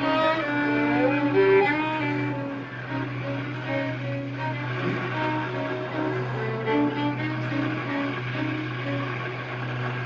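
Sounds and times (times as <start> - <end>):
low bass clarinet drone: 0.0 - 10.0
soft bowed violin notes: 0.0 - 10.0.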